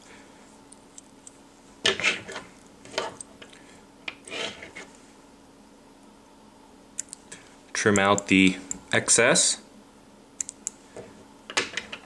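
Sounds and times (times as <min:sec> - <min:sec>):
thread rustling scrapes: 0:04.2 - 0:05.0.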